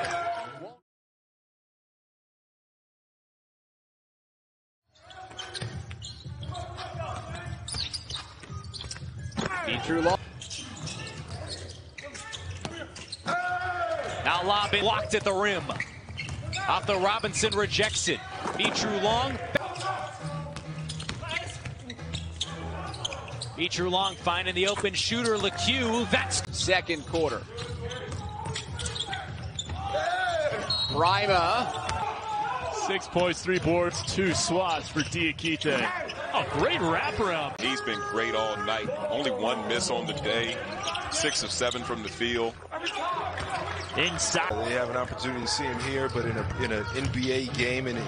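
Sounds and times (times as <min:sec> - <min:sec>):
sneaker squeaks: 0:05.0 - 0:44.6, 0:45.6 - 0:47.8
players calling out: 0:05.3 - 0:48.0.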